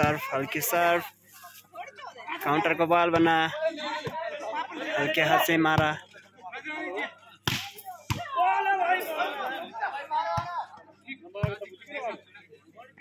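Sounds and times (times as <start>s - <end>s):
men talking and calling out: 0.0s - 13.0s
volleyball slaps: 7.5s - 8.3s.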